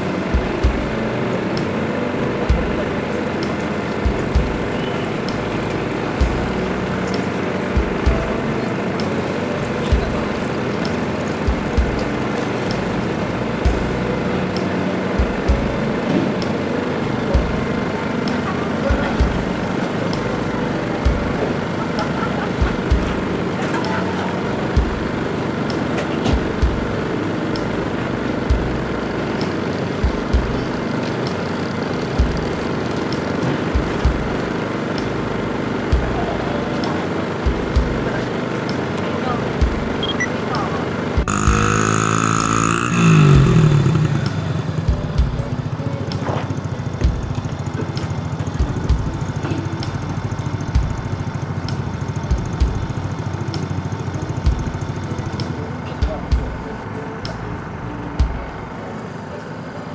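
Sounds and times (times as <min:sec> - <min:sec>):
distant dirt bike engines: 0:00.0 - 0:59.9
music: 0:00.0 - 0:59.9.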